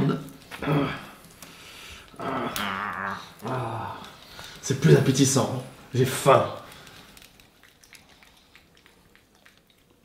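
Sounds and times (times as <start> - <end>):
man making animal-like vocal sounds: 2.2 - 4.1.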